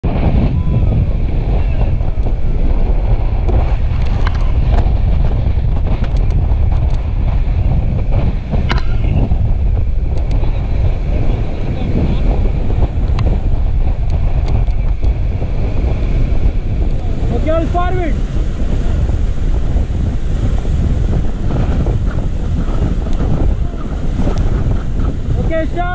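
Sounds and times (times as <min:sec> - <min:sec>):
wind buffeting microphone: 0:00.0 - 0:25.9
whitewater rushing: 0:15.1 - 0:25.9.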